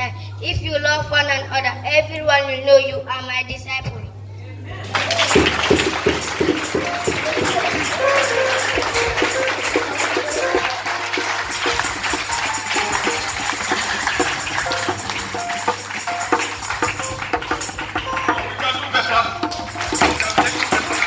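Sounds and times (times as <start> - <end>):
drum kit beat: 4.9 - 21.0
hands clapping along: 4.9 - 21.0
keyboard playing: 4.9 - 21.0.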